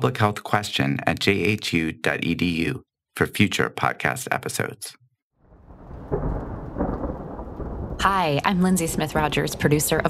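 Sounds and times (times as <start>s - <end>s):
rain: 5.4s - 10.0s
thunder rumbling: 5.4s - 10.0s.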